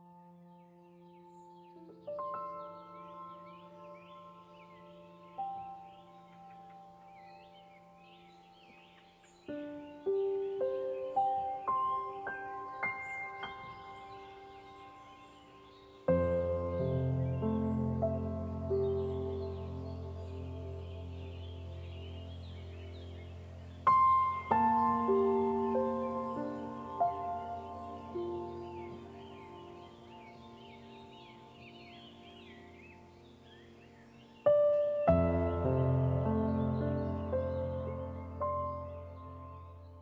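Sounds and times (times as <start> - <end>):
gentle piano-like background music: 0.0 - 40.0.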